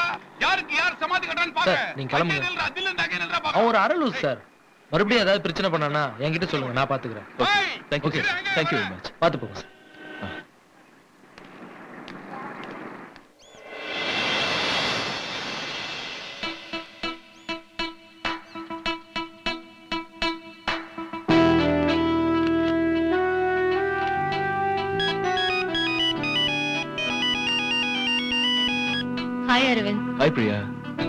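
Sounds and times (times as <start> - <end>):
rushing whoosh: 13.4 - 17.6
film music: 13.7 - 31.0
phone ringtone beeping melody: 25.0 - 29.1.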